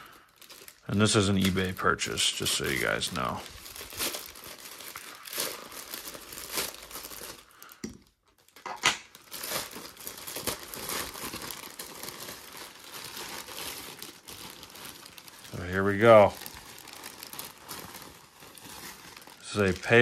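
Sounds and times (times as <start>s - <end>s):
plastic mailer bag crinkling: 0.0s - 20.0s
loud sharp plastic tear: 8.4s - 20.0s.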